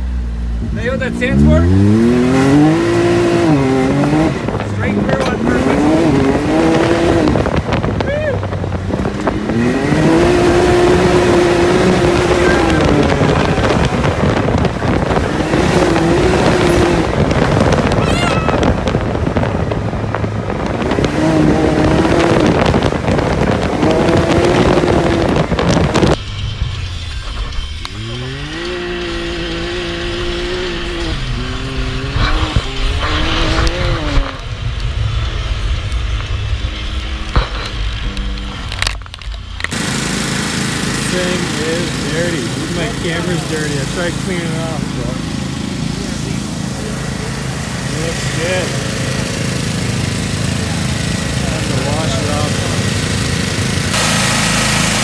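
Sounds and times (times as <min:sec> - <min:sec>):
heavy rushing noise: 0:00.0 - 0:55.0
vehicle engine revving: 0:00.0 - 0:55.0.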